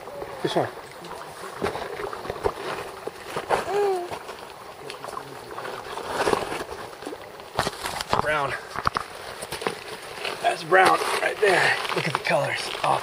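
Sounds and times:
creek running: 0.0 - 13.0
fish splashing in water: 0.0 - 13.0.

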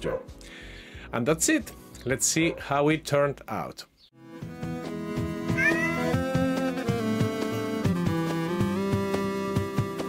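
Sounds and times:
background music with steady beat: 4.2 - 10.0
synthesized cat meow: 5.5 - 6.2.

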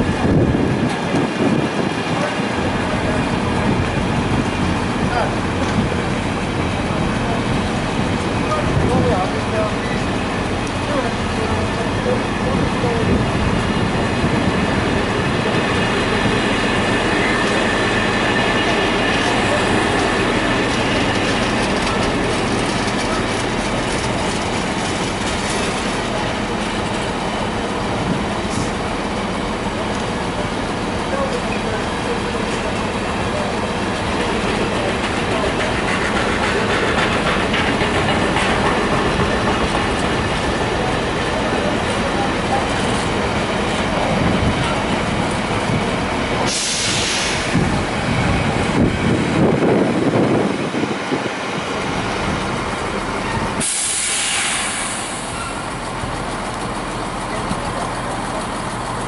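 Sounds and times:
freight train wheels rumbling on rails: 0.0 - 59.0.

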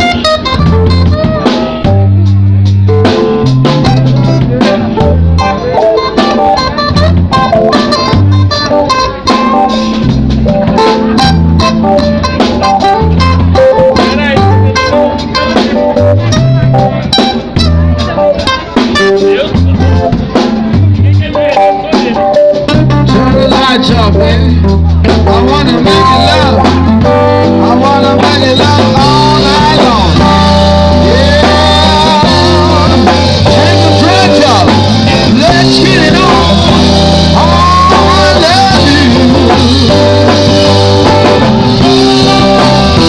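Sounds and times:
bass guitar: 0.0 - 43.0
drum kit: 0.0 - 43.0
electric guitar: 0.0 - 43.0.

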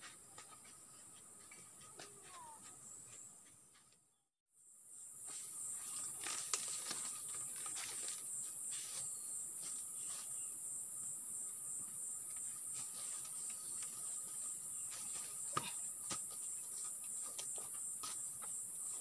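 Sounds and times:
forest insects chorus: 4.6 - 19.0
feet on dry leaf litter: 5.2 - 10.4.

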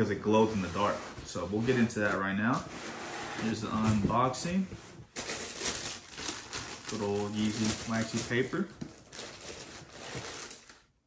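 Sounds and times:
tissue paper rustling and crinkling: 0.0 - 11.0.

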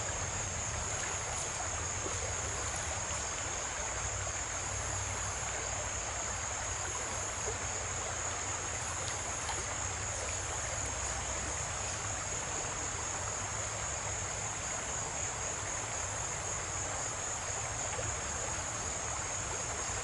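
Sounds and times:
creek water running over rocks: 0.0 - 20.0.

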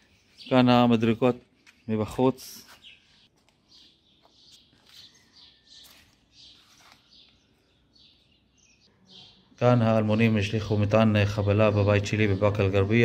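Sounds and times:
faint bird chirps: 2.5 - 13.0.

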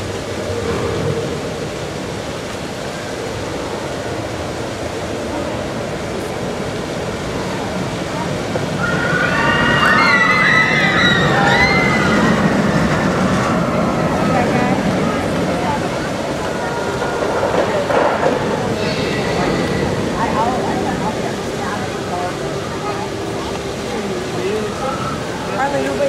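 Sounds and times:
crowd voices: 0.0 - 26.0
roller coaster rumble and clatter: 0.0 - 26.0.

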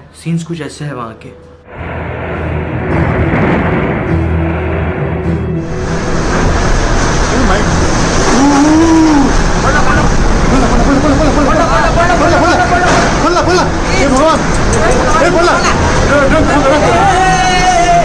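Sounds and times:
people crying out: 8.2 - 9.5, 15.6 - 18.0.

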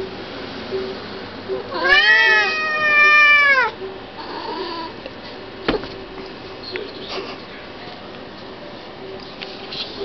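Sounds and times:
cat meowing: 1.7 - 4.9.

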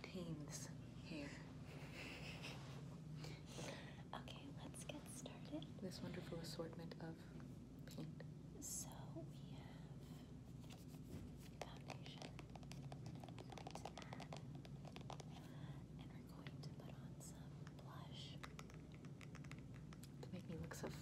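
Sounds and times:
steady low hum: 0.0 - 21.0.

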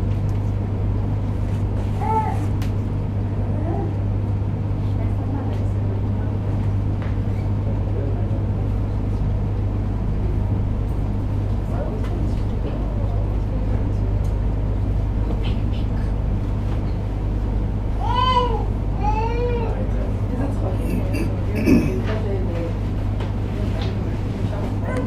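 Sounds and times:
steady low hum: 0.0 - 25.0
faint indistinct voices: 17.9 - 25.0.

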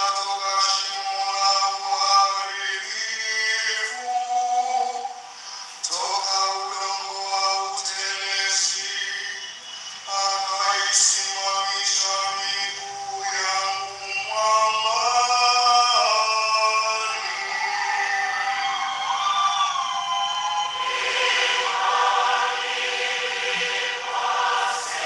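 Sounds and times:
man singing chant through loudspeakers: 0.0 - 18.6, 20.9 - 25.0.

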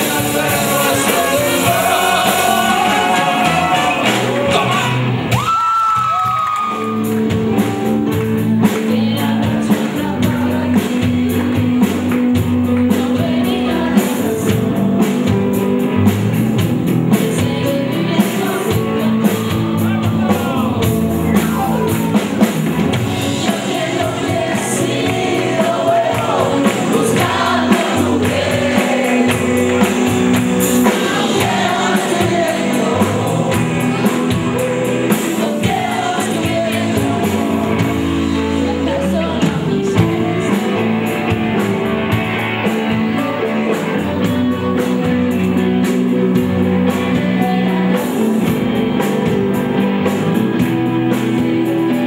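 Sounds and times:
person singing: 0.0 - 8.0, 8.6 - 15.6, 17.0 - 22.5, 23.2 - 41.6
bass and drum pattern: 0.0 - 52.0
drums: 0.0 - 52.0
electric guitar: 0.0 - 52.0
live rock band playing: 0.0 - 52.0.

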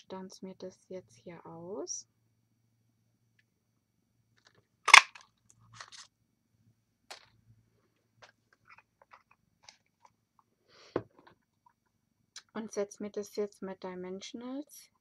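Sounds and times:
ticket punch crunching cardstock: 4.9 - 5.2.

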